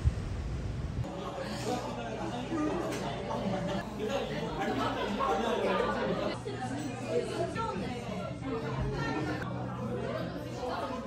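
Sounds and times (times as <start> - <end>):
low steady hum: 0.0 - 1.1
background chatter: 1.0 - 11.0.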